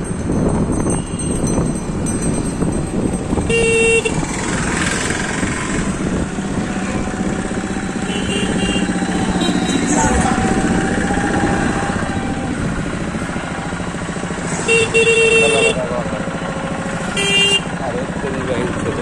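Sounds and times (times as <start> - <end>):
wind rumble on microphone: 0.0 - 14.0
motorcycle engines in traffic: 0.0 - 19.0
vehicle horn: 3.4 - 4.2, 8.0 - 10.1, 14.6 - 15.9, 17.1 - 17.8.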